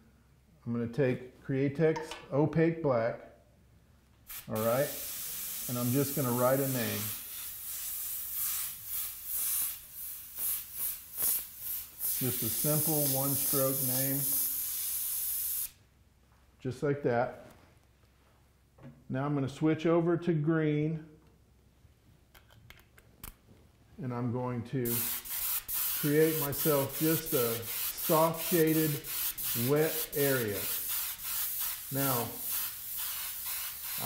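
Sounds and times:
airbrush spraying hissing bursts: 0:04.3 - 0:15.8, 0:24.8 - 0:34.0.

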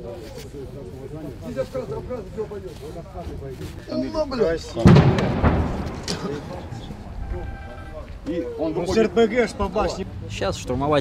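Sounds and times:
heavy blast booming: 0:04.8 - 0:08.3.

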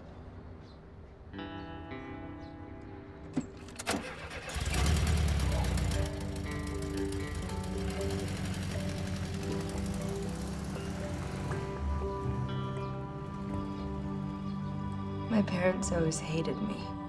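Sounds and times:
car engine starting and running: 0:03.4 - 0:15.3.

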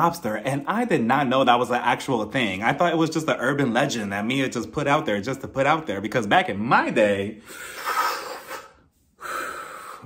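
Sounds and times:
breath blown through pursed lips: 0:07.4 - 0:10.0
man drawing in breath: 0:07.4 - 0:10.0.

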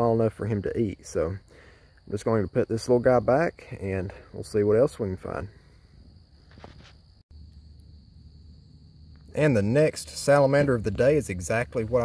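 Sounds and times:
quiet hiss: 0:00.0 - 0:12.0
faint rustle: 0:05.7 - 0:07.2.

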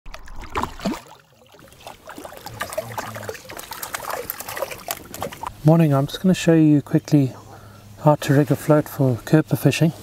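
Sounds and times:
fish splashing in water: 0:00.1 - 0:05.6.

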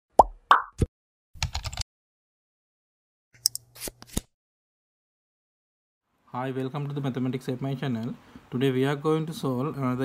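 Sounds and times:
rapid keyboard typing clicks: 0:01.4 - 0:01.8.

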